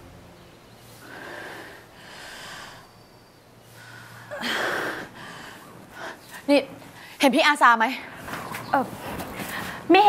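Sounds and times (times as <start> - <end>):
woman breathing heavily: 0.9 - 7.2, 9.0 - 9.9.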